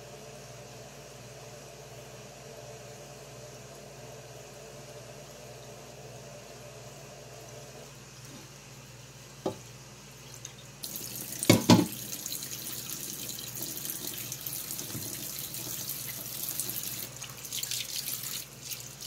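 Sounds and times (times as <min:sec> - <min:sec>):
tap water running into pot: 0:10.3 - 0:19.0.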